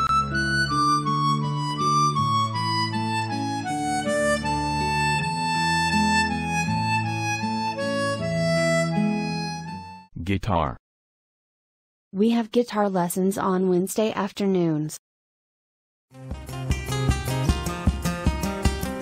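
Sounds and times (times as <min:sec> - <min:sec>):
harmonica playing slow melody: 0:00.0 - 0:10.1.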